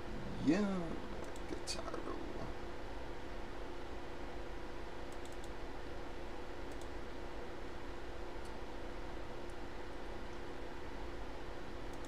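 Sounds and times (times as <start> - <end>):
steady low hum: 0.0 - 12.0
computer mouse clicks: 1.2 - 1.6, 5.1 - 5.6, 6.7 - 6.9.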